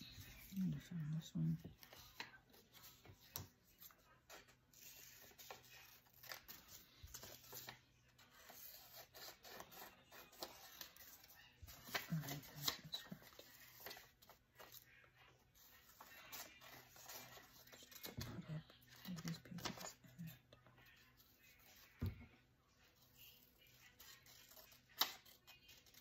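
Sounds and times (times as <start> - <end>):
paper rustling: 0.0 - 20.3.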